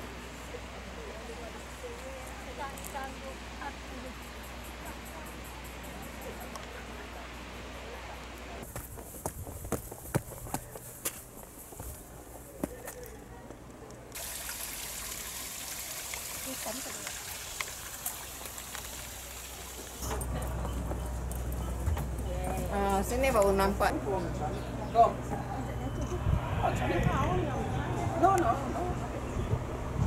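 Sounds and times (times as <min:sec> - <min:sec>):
creek trickling: 0:14.2 - 0:20.1.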